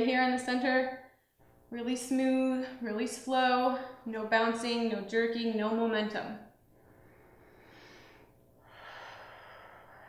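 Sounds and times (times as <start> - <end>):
woman breathing under exertion: 6.8 - 10.0.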